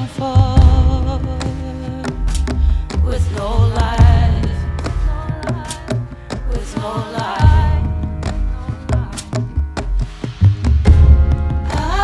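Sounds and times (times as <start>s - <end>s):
drum and percussion hits: 0.0s - 12.0s
upright bass notes: 0.0s - 12.0s.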